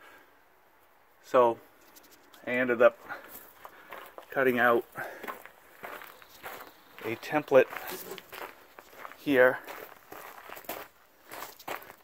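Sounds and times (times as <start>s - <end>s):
footsteps crunching on gravel: 2.8s - 12.0s.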